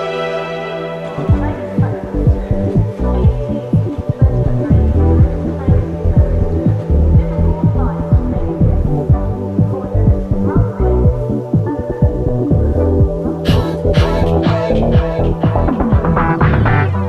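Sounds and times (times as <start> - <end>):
loud low throbbing bass drone: 1.0 - 17.0.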